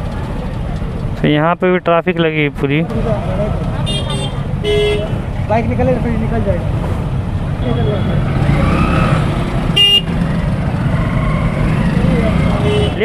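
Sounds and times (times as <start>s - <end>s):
motorbike and car engines rumbling: 0.0s - 13.0s
horn toot: 9.8s - 10.2s, 12.5s - 13.0s.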